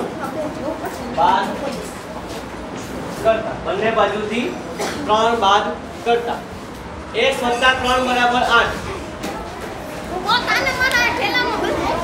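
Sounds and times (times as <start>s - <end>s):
children talking and calling out: 8.7s - 12.0s.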